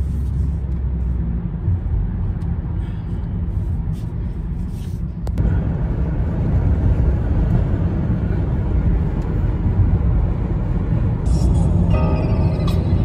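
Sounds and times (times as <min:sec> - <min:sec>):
car road and engine rumble: 0:00.0 - 0:13.0.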